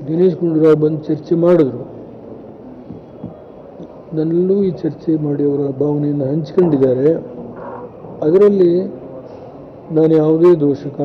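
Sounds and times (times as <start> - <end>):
man speaking into microphones: 0.0 - 2.0, 4.1 - 7.5, 8.1 - 9.1, 9.8 - 11.0
faint background noise: 0.0 - 11.0.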